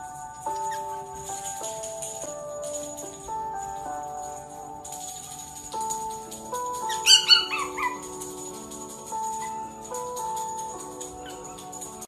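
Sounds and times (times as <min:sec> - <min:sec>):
background music: 0:00.0 - 0:12.0
puppy high-pitched calls: 0:06.8 - 0:08.4.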